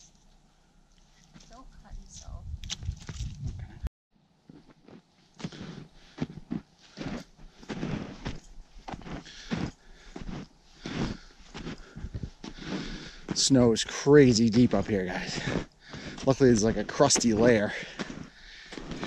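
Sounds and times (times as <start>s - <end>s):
footsteps crunching through snow: 4.5s - 19.0s.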